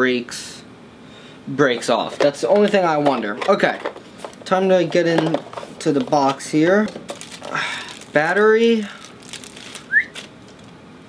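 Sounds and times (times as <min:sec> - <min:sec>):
plastic packaging clicks and rustles: 0:02.2 - 0:10.8.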